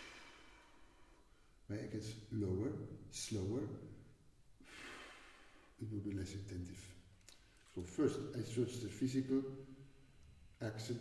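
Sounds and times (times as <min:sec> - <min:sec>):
man breathing out: 0:04.6 - 0:05.8.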